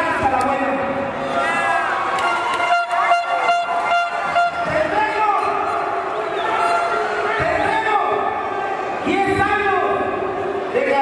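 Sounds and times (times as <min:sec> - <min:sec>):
crowd shouting: 0:01.2 - 0:09.1
horn blown on one note: 0:02.3 - 0:04.8.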